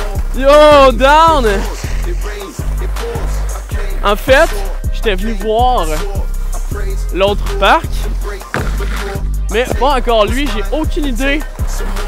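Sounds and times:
hip-hop background music: 0.0s - 12.0s
kick drums falling in pitch: 8.5s - 10.2s.

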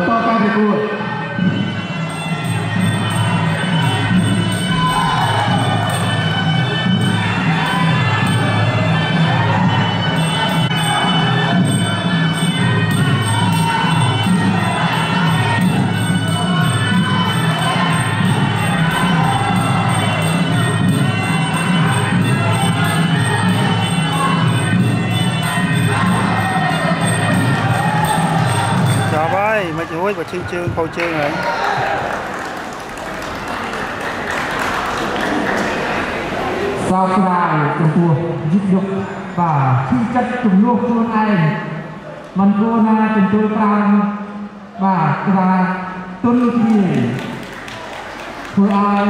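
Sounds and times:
reed pipe melody: 1.4s - 31.1s
steady drum beat: 12.7s - 31.0s.

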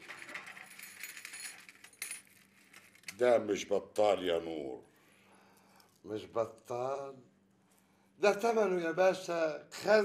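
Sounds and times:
gold jewellery jingling and clinking: 0.0s - 3.2s.

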